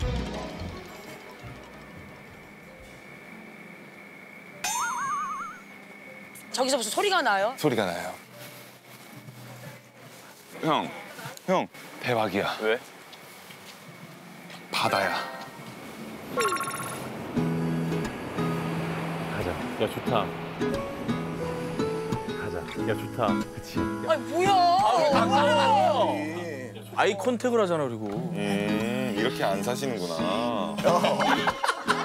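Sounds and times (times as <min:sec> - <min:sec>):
quiet background music: 0:00.0 - 0:32.0
warbling tone: 0:04.6 - 0:05.7, 0:16.4 - 0:17.2.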